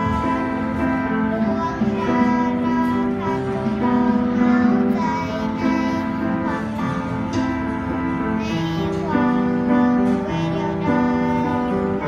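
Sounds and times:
piano accompaniment: 0:00.0 - 0:12.0.

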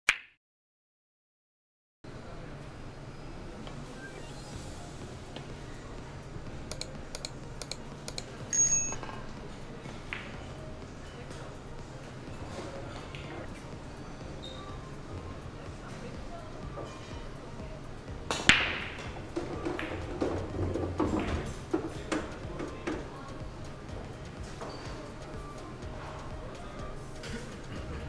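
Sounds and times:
pool balls clicking: 0:18.3 - 0:23.1.

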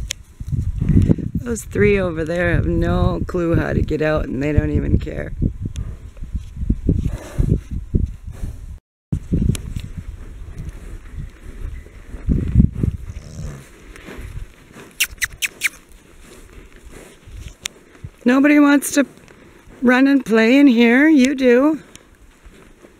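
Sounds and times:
horses rustling and thumping: 0:09.2 - 0:22.9
short high squeaks: 0:15.0 - 0:15.8.

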